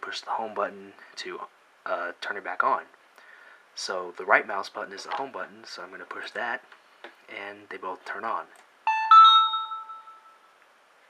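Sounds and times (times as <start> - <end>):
notification chime: 8.9 - 10.5.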